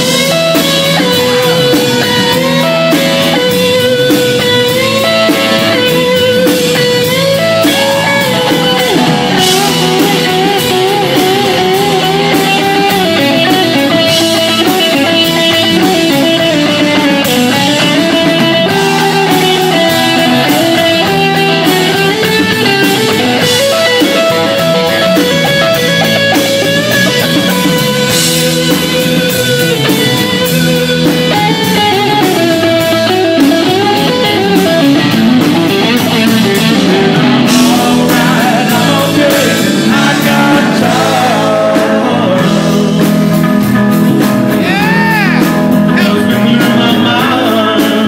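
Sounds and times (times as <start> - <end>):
drums: 0.0 - 48.0
electric guitar lead with bent notes: 0.0 - 48.0
rock band playing live: 0.0 - 48.0.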